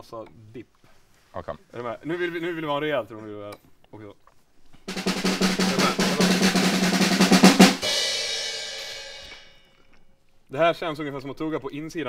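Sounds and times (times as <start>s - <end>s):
snare drum roll: 4.9s - 9.5s.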